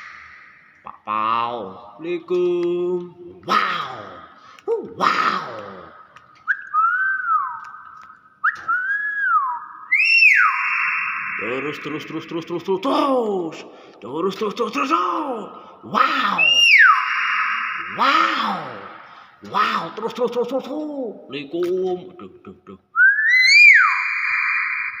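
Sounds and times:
myna whistling: 0:06.4 - 0:12.0, 0:16.4 - 0:17.9, 0:23.0 - 0:25.0.

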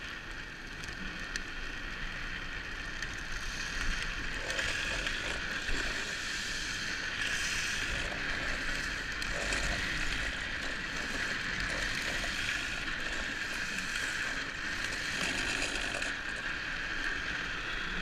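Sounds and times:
rolling wheel noise: 0:00.0 - 0:18.0.

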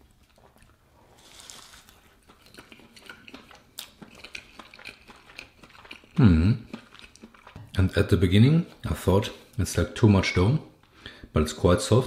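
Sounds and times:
person chewing: 0:00.0 - 0:09.6.

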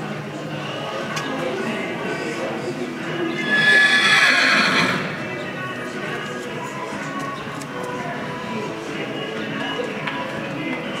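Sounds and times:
horse whinnying: 0:03.3 - 0:05.4.

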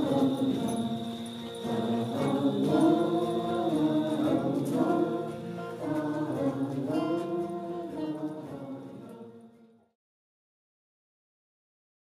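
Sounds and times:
group singing devotional chant: 0:00.0 - 0:09.8.

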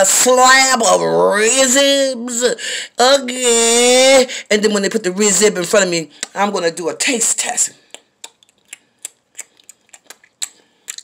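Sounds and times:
lip smacks and mouth clicks: 0:07.8 - 0:11.0.

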